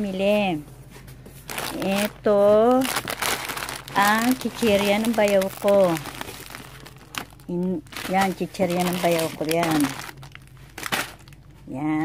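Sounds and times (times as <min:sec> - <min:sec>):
plastic snack bag crinkling: 0:01.5 - 0:11.7.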